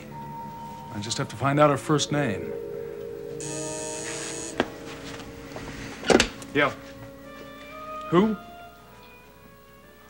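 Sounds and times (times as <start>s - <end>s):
intercom buzzer buzzing: 3.4s - 4.8s.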